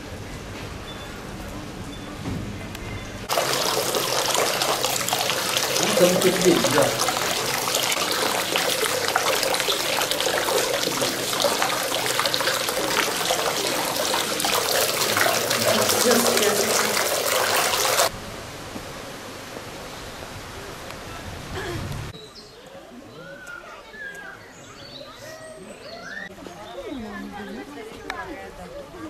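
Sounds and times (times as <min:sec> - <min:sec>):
voices: 0:03.3 - 0:18.1
fountain water splashing: 0:03.3 - 0:18.2.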